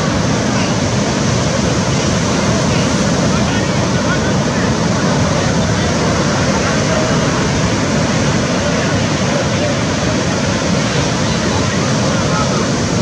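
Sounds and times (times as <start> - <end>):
breaking surf: 0.0 - 13.0
indistinct voices: 0.0 - 13.0.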